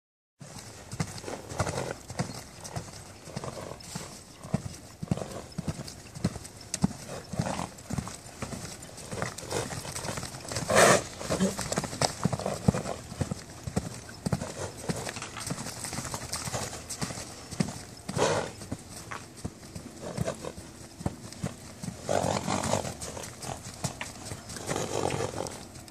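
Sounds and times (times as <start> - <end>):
horse hoofbeats on sand: 0.4 - 25.9.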